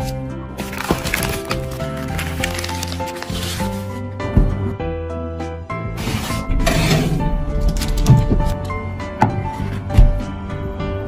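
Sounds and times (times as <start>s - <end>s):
paper packaging rustling: 0.0s - 4.1s
background music: 0.0s - 11.0s.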